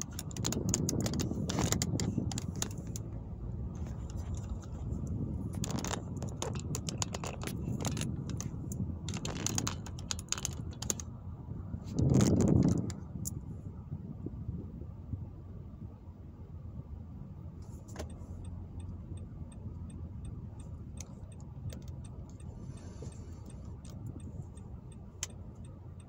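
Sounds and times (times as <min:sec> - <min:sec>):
light clicks and rattles: 0:00.0 - 0:11.2, 0:11.9 - 0:13.4, 0:20.6 - 0:26.0
car cabin road and engine noise: 0:00.0 - 0:26.0.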